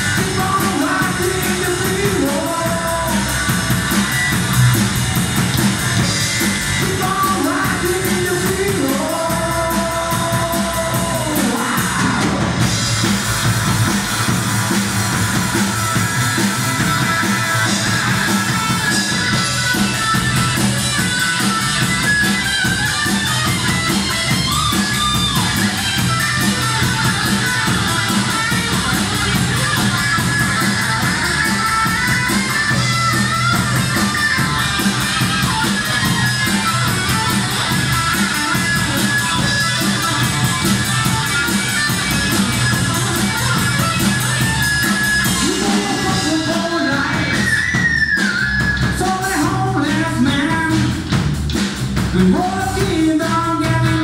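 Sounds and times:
drum kit: 0.0s - 54.0s
electric bass: 0.0s - 54.0s
electric guitar lead lines: 0.0s - 54.0s.

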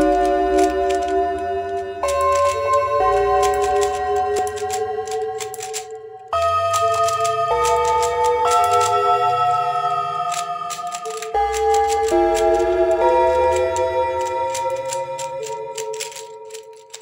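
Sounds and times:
keyboard chords: 0.0s - 17.0s
light ticking: 0.0s - 17.0s.

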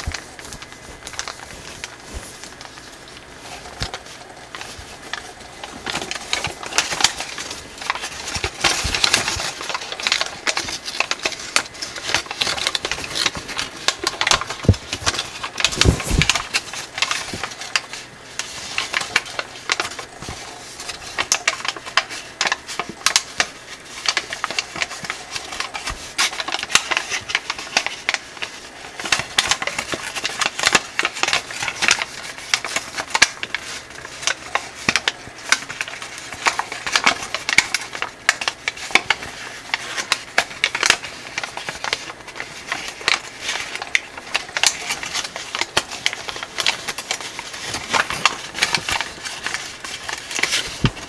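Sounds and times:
foil paper crinkling: 0.0s - 51.0s.

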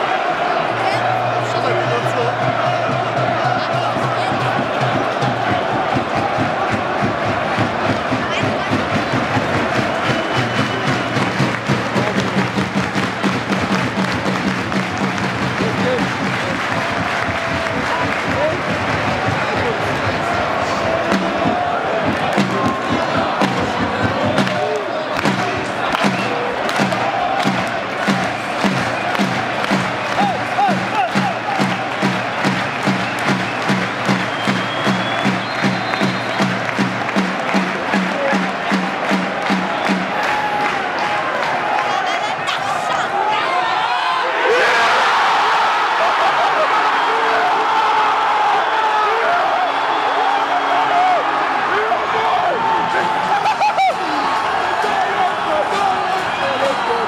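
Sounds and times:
crowd chanting: 0.0s - 14.2s, 15.8s - 57.0s
crowd cheering: 0.0s - 57.0s
bass drum beating: 1.8s - 40.2s.

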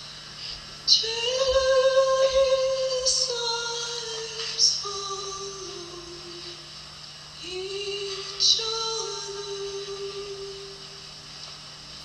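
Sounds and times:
woman singing long held notes: 0.9s - 6.8s, 7.4s - 11.1s.

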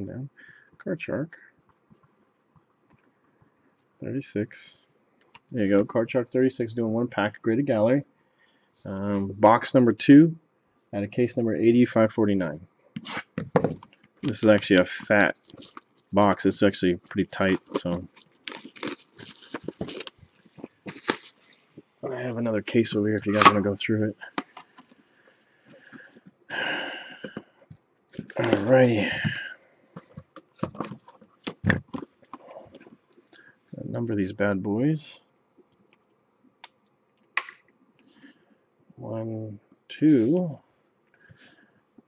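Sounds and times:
plastic wrapper crinkling and tearing: 14.2s - 16.1s, 17.0s - 21.8s, 23.2s - 23.6s.

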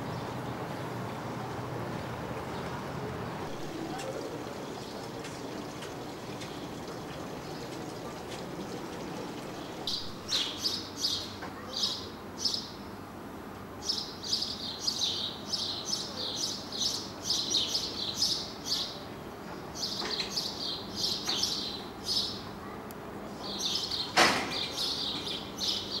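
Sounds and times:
birds chirping: 0.0s - 12.8s, 23.4s - 26.0s.

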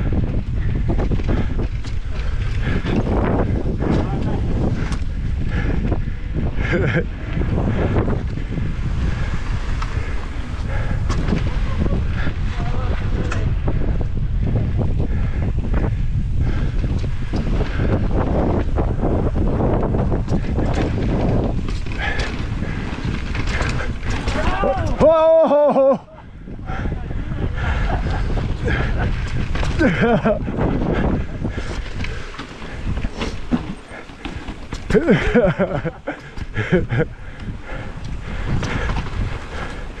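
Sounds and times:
bike rattling over rocks: 0.0s - 14.0s, 15.5s - 25.9s, 27.8s - 40.0s
wind noise on microphone: 0.0s - 40.0s.

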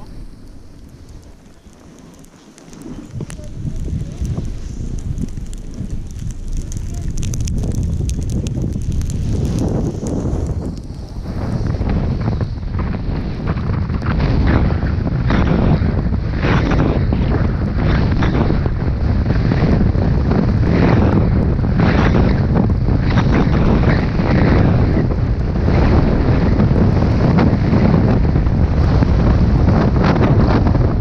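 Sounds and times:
ski edges scraping snow: 0.0s - 8.0s, 9.0s - 18.6s
wind buffeting microphone: 0.0s - 31.0s.

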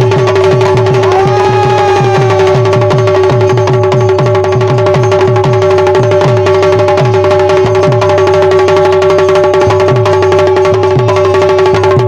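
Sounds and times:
fast hand drumming: 0.0s - 12.0s.

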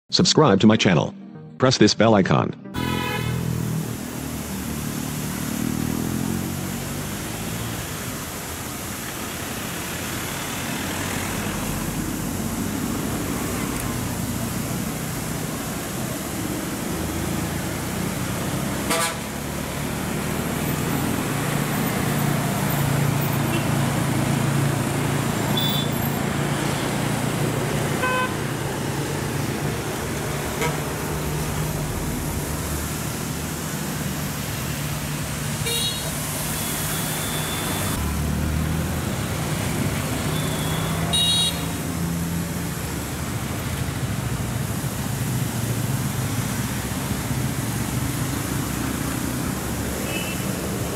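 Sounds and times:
vehicle horn toots: 2.8s - 3.5s, 18.9s - 19.3s, 28.0s - 28.4s, 30.6s - 30.9s, 35.6s - 38.0s, 40.3s - 41.8s, 50.0s - 50.5s
bus engine droning: 2.8s - 50.9s.

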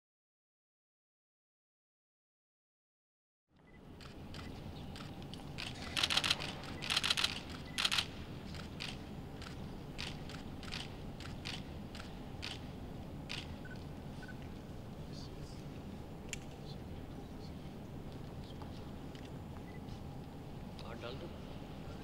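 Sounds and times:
low room hum: 3.6s - 22.0s
camera shutters clicking: 4.0s - 12.6s, 13.3s - 13.8s.

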